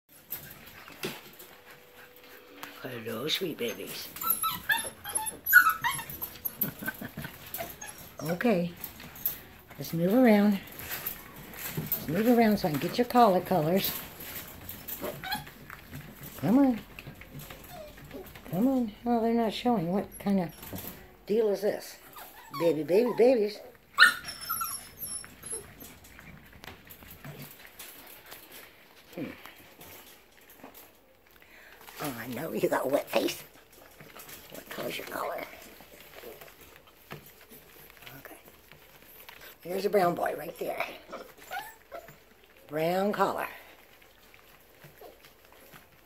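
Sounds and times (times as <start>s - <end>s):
small scratches and rustles: 0.1s - 19.6s, 22.0s - 46.0s
puppies whimpering: 0.4s - 9.7s, 10.6s - 16.3s, 17.0s - 18.5s, 22.0s - 27.7s, 38.9s - 43.1s
puppy yelp: 3.6s - 7.0s, 7.6s - 8.4s, 15.0s - 15.6s, 17.5s - 18.3s, 22.1s - 26.0s, 41.1s - 42.3s.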